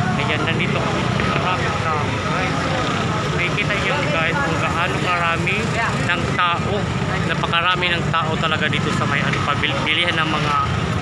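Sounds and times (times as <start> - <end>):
crowd chatter: 0.0 - 11.0
low rumble of vehicle engines: 0.0 - 11.0.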